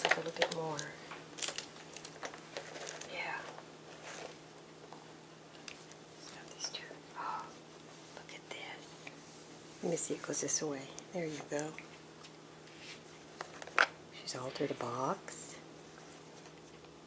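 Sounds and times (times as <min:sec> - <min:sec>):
soft murmur or whisper: 0:06.2 - 0:09.2.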